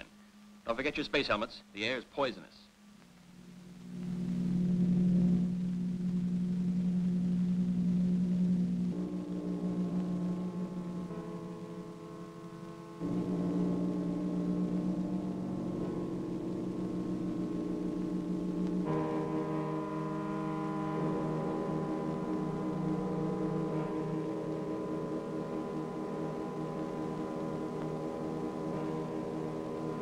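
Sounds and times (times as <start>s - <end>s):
low sustained drone chord: 2.8s - 30.0s.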